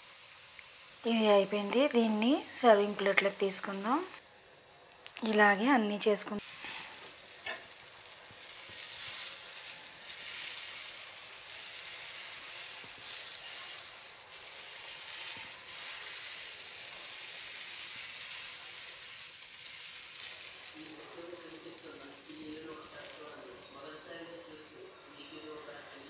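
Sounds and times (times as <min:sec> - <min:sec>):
batter sizzling in oil: 0:00.0 - 0:04.3, 0:05.0 - 0:25.7.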